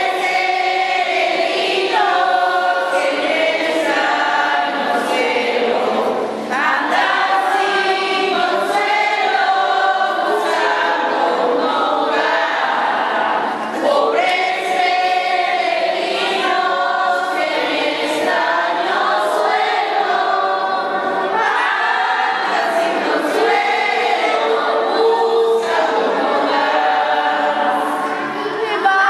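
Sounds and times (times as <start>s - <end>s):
crowd singing together: 0.0s - 29.0s.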